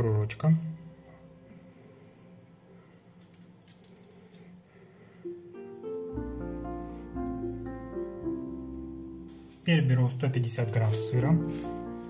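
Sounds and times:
soft kitchen clicks and crinkles: 3.2 - 4.6.

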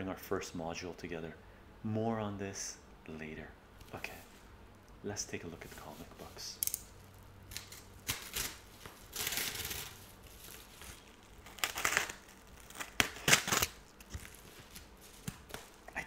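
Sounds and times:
paper envelope crinkling and tearing: 7.5 - 15.9.

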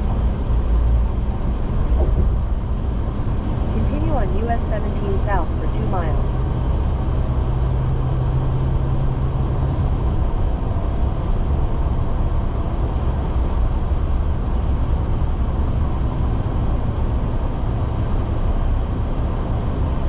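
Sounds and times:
car road and engine noise: 0.0 - 20.0
low steady hum: 0.0 - 20.0.

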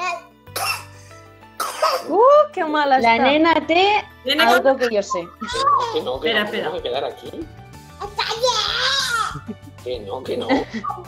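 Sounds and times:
quiet background music: 0.0 - 11.0
person coughing: 0.6 - 0.9, 1.6 - 2.1.

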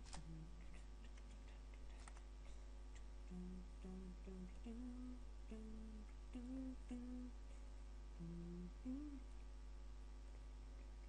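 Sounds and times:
man humming: 0.2 - 0.7, 3.3 - 7.4, 8.2 - 9.3.

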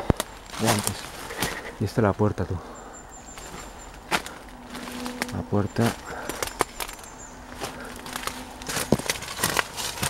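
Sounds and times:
small branches snapping underfoot: 0.0 - 1.7, 3.4 - 10.0
footsteps crunching through dry leaves: 0.1 - 1.8, 3.3 - 10.0.

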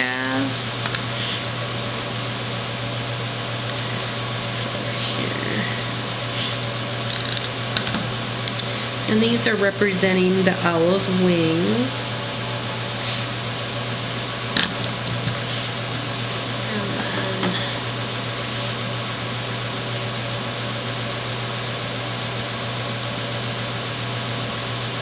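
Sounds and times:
low drone: 0.0 - 19.4
background hum and hiss: 0.0 - 25.0.

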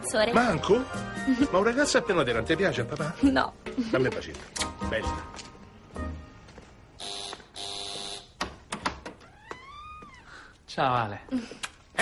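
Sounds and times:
doorbell buzzer: 7.0 - 8.4.

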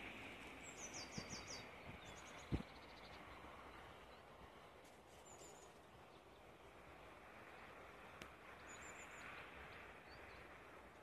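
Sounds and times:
small bird singing: 0.5 - 4.4, 5.1 - 6.6, 8.6 - 10.6.

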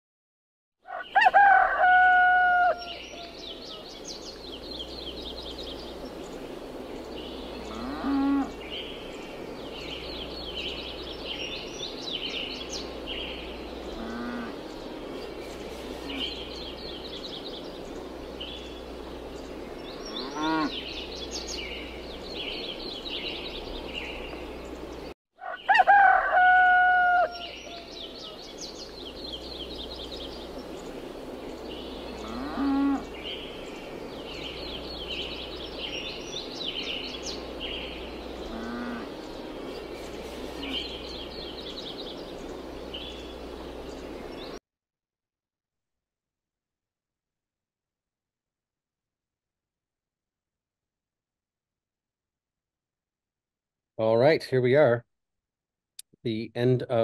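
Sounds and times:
rooster crowing: 0.8 - 3.8, 25.4 - 28.4
small birds chirping: 2.7 - 25.8, 27.2 - 44.6
cattle mooing: 7.7 - 8.6, 14.0 - 14.6, 20.1 - 20.8, 32.2 - 33.1, 38.5 - 39.2.

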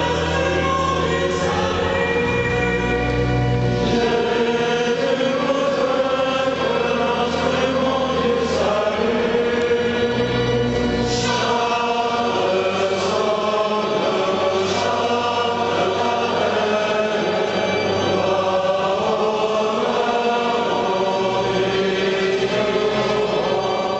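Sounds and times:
choir singing slow chant: 0.0 - 23.9.

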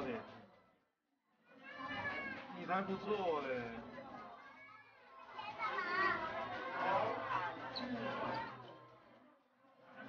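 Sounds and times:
young children talking and calling: 1.4 - 2.5, 4.0 - 9.0.

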